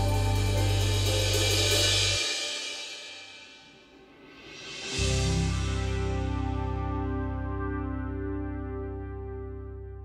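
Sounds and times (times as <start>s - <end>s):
cymbal crash: 0.0s - 6.8s
soft sustained music: 0.0s - 10.0s
song backing track: 0.0s - 10.0s.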